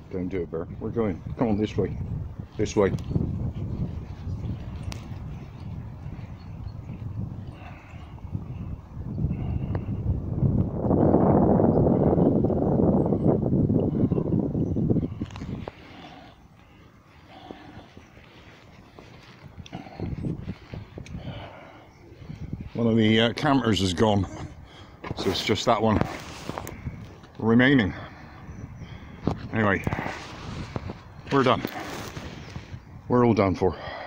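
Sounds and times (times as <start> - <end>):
faint footsteps and movement: 0.0 - 10.0, 13.8 - 33.4
wind buffeting microphone: 0.0 - 34.0.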